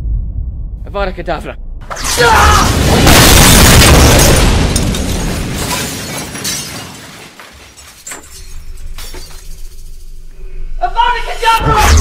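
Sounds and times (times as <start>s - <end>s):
window glass shattering: 1.9s - 10.2s
glass shards clinking: 3.6s - 10.2s.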